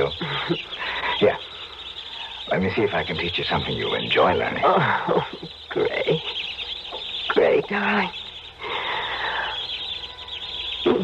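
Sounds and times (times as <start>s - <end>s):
rats squeaking and chittering: 0.0s - 11.0s.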